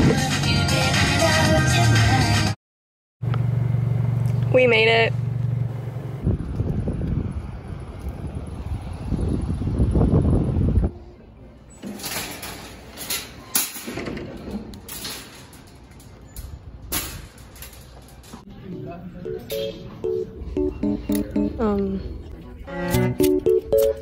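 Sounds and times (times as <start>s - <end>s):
shopping cart rattling: 11.8s - 18.5s.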